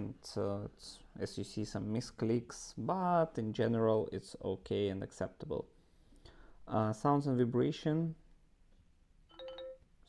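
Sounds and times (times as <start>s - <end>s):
two-note phone chime: 9.3s - 9.8s.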